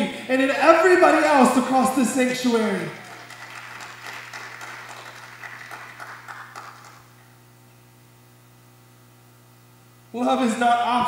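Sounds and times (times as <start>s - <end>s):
congregation applauding: 2.4s - 7.2s.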